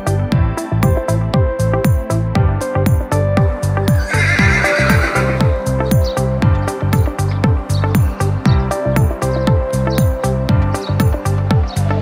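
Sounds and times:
horse whinnying: 3.9 - 5.7.

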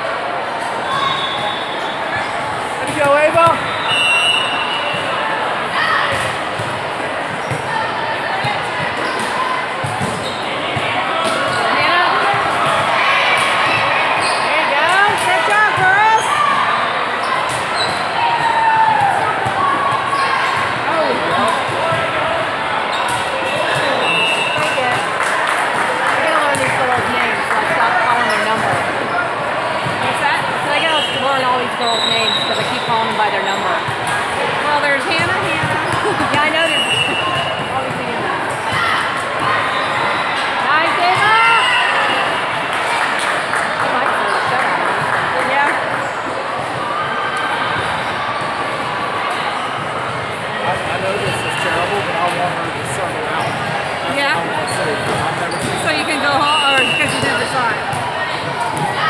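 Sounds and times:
voices calling out: 26.0 - 46.0, 53.1 - 59.0.

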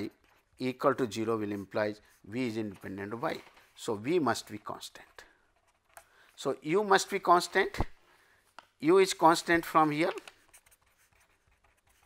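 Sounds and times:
pen scratching on paper: 10.4 - 12.0.

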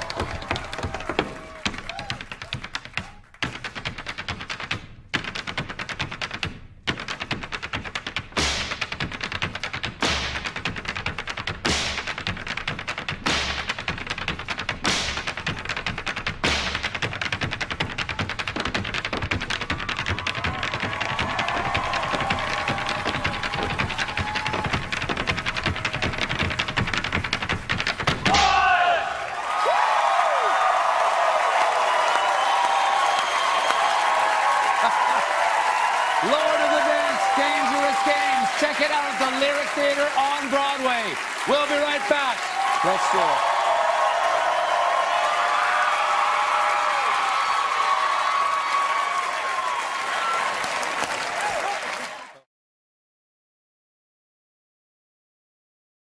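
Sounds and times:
audience cheering and applause: 0.0 - 3.3, 17.8 - 52.5
hard shoes tapping on stage: 0.0 - 28.4.

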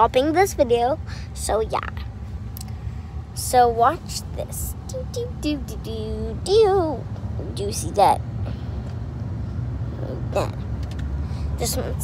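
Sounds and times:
car rumbling on road: 0.0 - 12.0.

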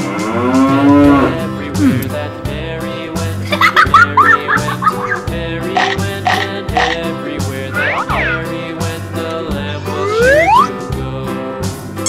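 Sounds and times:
cow mooing: 0.0 - 1.4
nursery rhyme backing music: 0.0 - 12.0.

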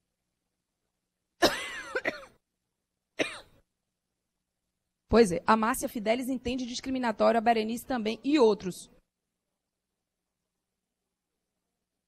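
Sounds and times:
person coughing: 1.4 - 2.4, 3.2 - 3.6.

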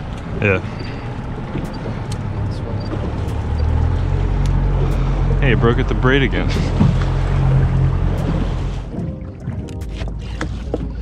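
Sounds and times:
outboard motor running: 0.0 - 11.0
water and wind noise: 0.0 - 11.0
background music: 7.6 - 11.0.

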